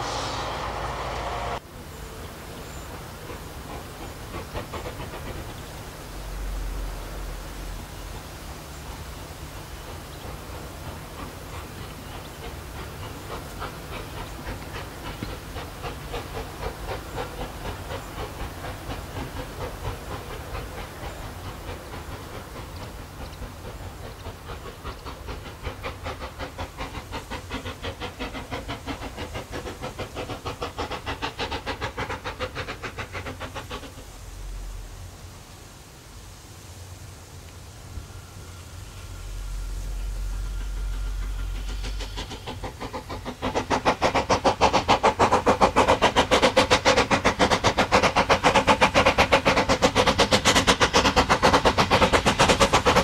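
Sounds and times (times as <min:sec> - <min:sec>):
steam locomotive exhaust chuffs: 0:00.0 - 0:53.0.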